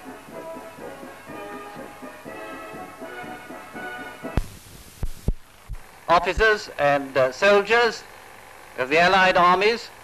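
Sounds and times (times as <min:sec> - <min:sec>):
music: 0:00.0 - 0:04.6
faint hum: 0:00.0 - 0:10.0
low thuds: 0:02.1 - 0:06.5.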